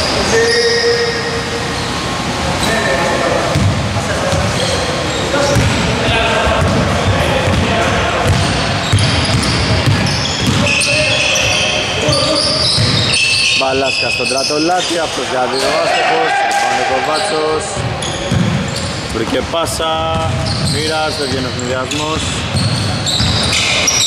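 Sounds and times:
players' voices echoing: 0:00.0 - 0:24.0
sneakers squeaking: 0:00.0 - 0:24.0
basketball bouncing on hardwood: 0:05.6 - 0:05.8, 0:06.6 - 0:10.7, 0:22.6 - 0:23.5.

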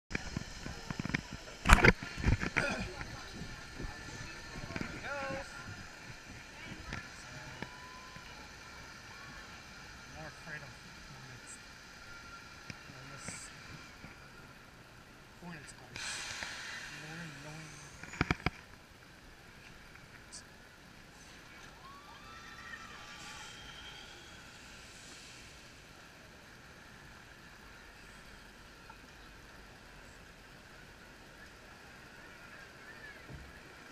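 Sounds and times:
faint distant voices: 0:00.1 - 0:33.9.

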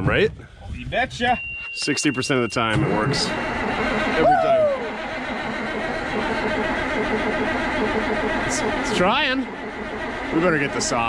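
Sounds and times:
starter cranking diesel engine: 0:02.0 - 0:11.0.

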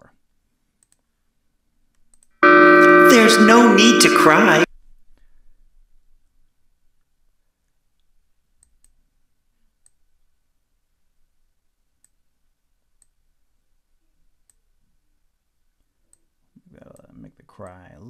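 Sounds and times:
faint computer mouse clicks: 0:00.8 - 0:01.1, 0:01.9 - 0:02.3, 0:08.0 - 0:09.0, 0:09.8 - 0:10.0, 0:13.0 - 0:13.2.

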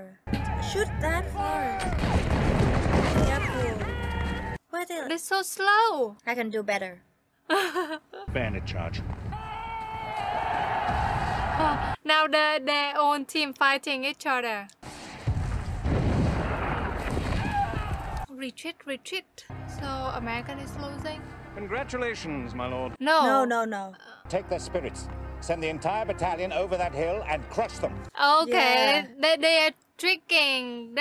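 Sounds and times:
musket and cannon fire: 0:01.8 - 0:03.9, 0:14.8 - 0:18.2
film score music: 0:19.5 - 0:23.0, 0:24.2 - 0:28.2.

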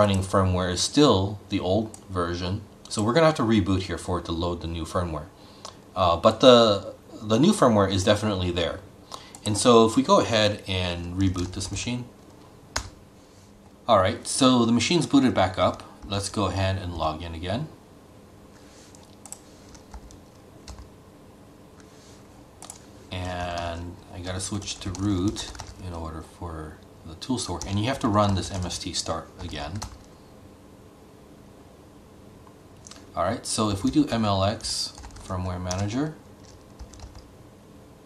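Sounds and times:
faint steady hiss: 0:00.0 - 0:38.0
computer keyboard keystrokes: 0:12.8 - 0:13.0, 0:18.9 - 0:20.9, 0:22.6 - 0:22.8, 0:24.7 - 0:25.8, 0:29.4 - 0:30.1, 0:34.9 - 0:37.3.

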